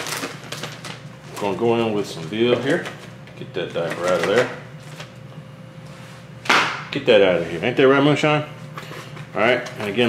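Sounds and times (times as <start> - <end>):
plastic packaging rustling: 0.0 - 5.2.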